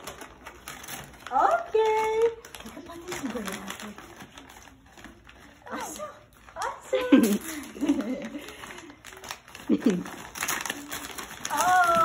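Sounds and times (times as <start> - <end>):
wrapping paper crinkling and tearing: 0.0 - 12.0.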